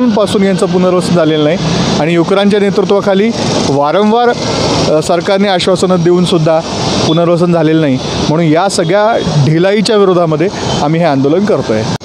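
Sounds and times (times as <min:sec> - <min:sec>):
man speaking into a microphone: 0:00.0 - 0:12.0
street noise hiss: 0:00.0 - 0:12.0.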